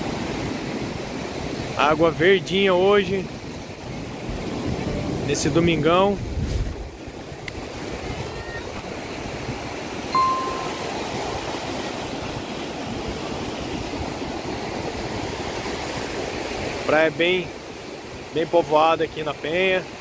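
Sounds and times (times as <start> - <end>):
short clear tone: 10.2 - 11.2.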